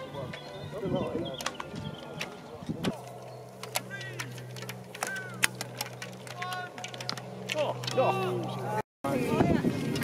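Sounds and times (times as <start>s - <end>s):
bow string snaps and clicks: 3.6s - 8.0s.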